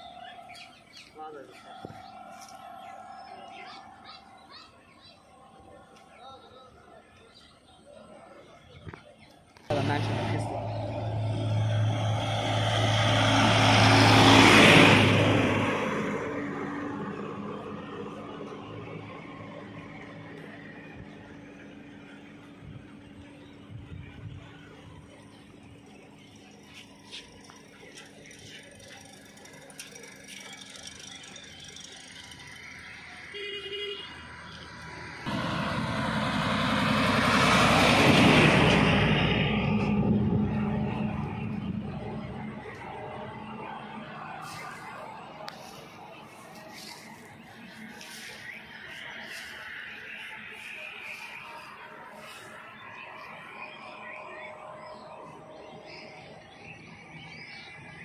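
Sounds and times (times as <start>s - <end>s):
low engine drone: 0.0s - 58.0s
small tractor driving past: 9.7s - 58.0s.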